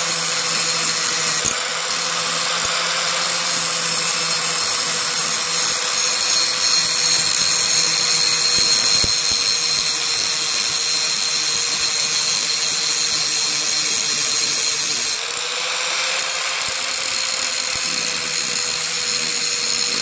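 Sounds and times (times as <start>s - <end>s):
angle grinder grinding steel: 0.0s - 20.0s.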